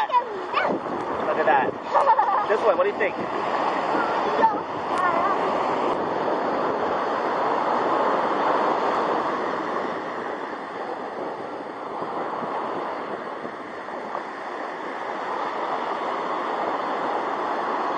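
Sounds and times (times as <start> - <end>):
ocean surf washing up beach: 0.0 - 17.9.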